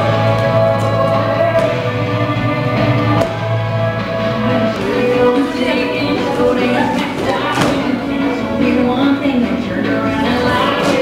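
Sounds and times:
country song over sound system: 0:00.0 - 0:11.0.

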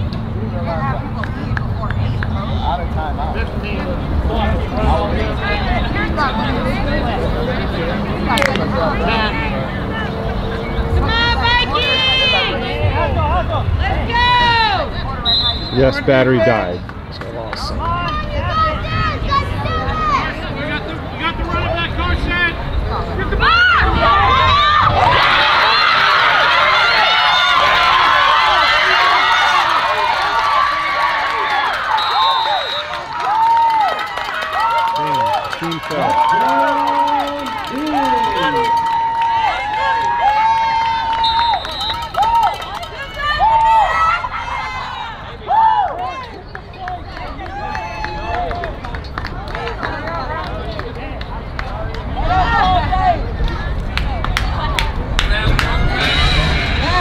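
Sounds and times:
crowd cheering and shouting: 0:02.5 - 0:57.0
shouted calls and chants: 0:03.6 - 0:16.7, 0:17.4 - 0:48.8.

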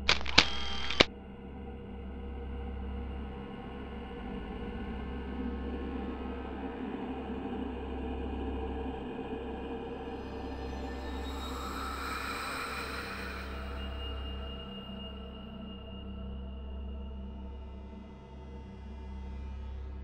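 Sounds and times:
loud noise burst with clicks: 0:00.0 - 0:01.1
horror music drone: 0:01.9 - 0:18.1.

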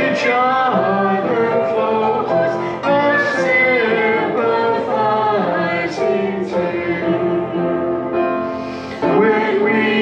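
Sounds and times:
congregation singing a hymn: 0:00.0 - 0:10.0.

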